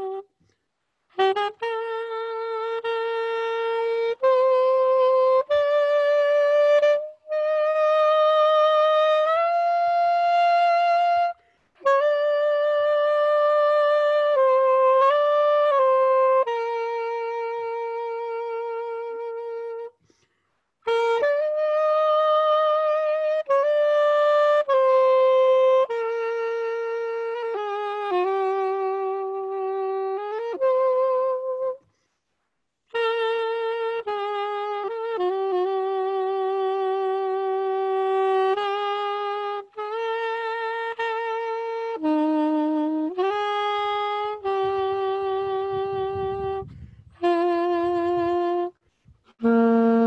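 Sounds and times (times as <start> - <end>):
soprano saxophone melody: 0.0 - 50.0.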